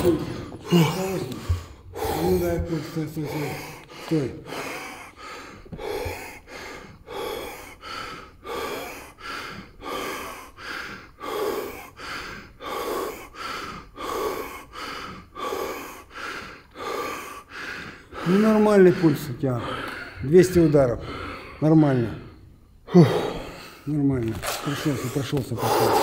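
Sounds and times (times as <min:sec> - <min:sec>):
man panting hard: 0:00.0 - 0:23.9, 0:24.5 - 0:26.0.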